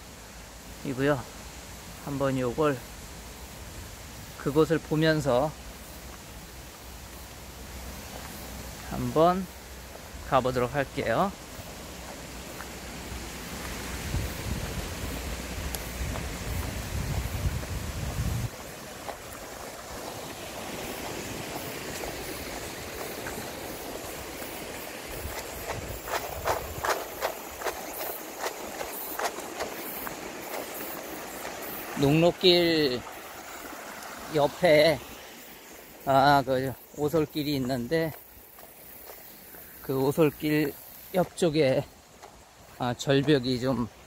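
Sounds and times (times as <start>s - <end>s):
wind rumbling on microphone: 12.0s - 30.6s
footsteps on concrete: 13.5s - 19.4s, 21.9s - 31.9s, 37.6s - 44.0s.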